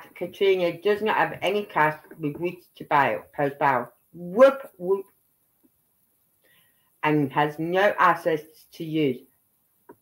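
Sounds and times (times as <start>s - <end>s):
faint intake of breath: 6.4s - 7.0s.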